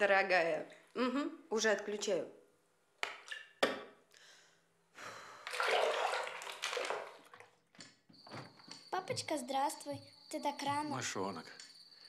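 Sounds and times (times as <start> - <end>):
bathwater sloshing and splashing: 3.0 - 4.0, 5.3 - 7.9.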